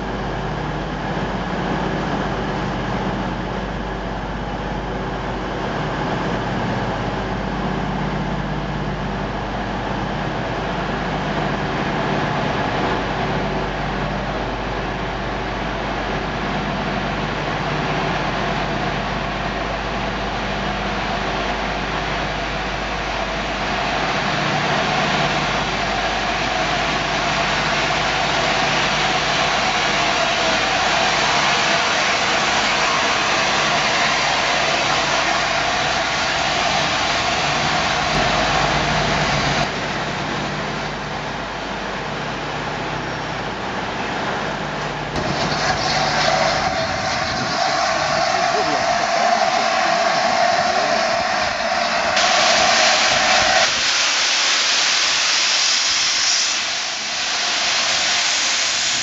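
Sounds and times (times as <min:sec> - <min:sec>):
steam locomotive wheels rumbling: 0:00.0 - 0:59.0
escaping steam hiss: 0:25.8 - 0:39.6, 0:45.2 - 0:59.0.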